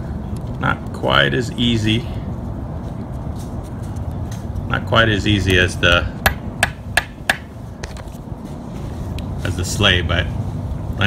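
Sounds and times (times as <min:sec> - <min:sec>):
hammer tapping metal punch: 0:06.2 - 0:07.5.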